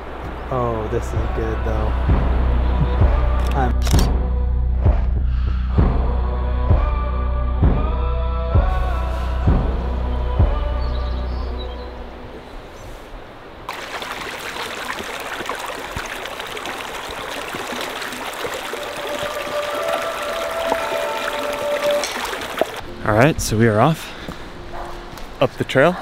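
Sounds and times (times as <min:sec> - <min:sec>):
background music with deep drums: 0:00.9 - 0:11.0
stream running over rocks: 0:13.7 - 0:22.9.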